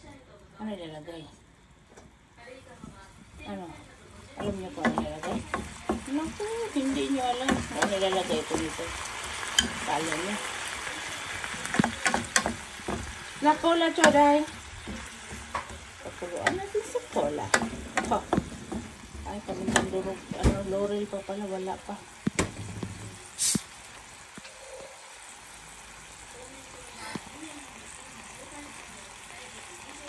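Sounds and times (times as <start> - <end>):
meat and onions sizzling in a pan: 0.4 - 30.0
wooden spatula scraping a pan: 11.6 - 20.8
short loud hiss: 23.3 - 23.8.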